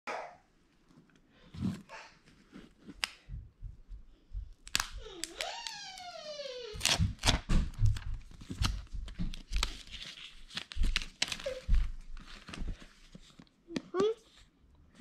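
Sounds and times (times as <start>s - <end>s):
paper wrapping tearing: 4.7s - 7.4s, 9.4s - 12.6s.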